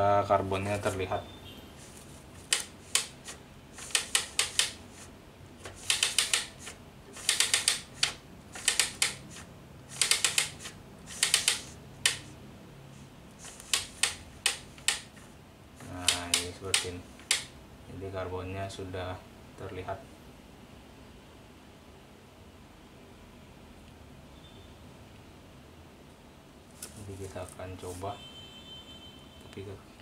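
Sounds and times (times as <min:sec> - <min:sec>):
ribbon spool clicking: 0:02.4 - 0:04.8, 0:05.6 - 0:12.3, 0:15.9 - 0:17.5.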